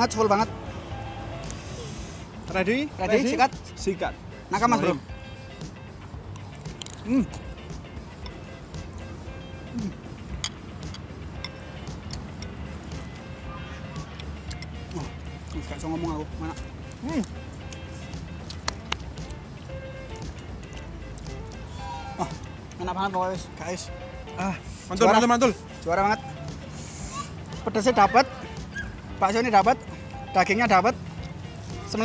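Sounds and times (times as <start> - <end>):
quiet background music: 0.0 - 32.0
person murmuring: 7.0 - 7.5, 9.7 - 10.1.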